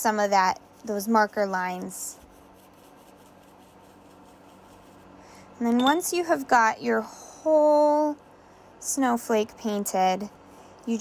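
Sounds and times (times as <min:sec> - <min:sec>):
paintbrush rubbing on wet paper: 0:00.6 - 0:05.2, 0:09.6 - 0:11.0.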